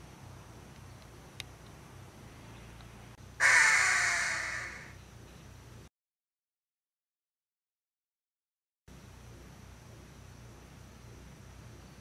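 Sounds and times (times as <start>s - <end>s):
hawk screaming: 3.4s - 5.0s.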